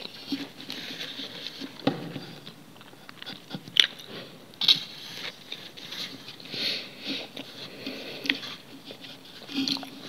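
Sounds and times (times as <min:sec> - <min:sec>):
chewing noodles: 0:00.0 - 0:10.0.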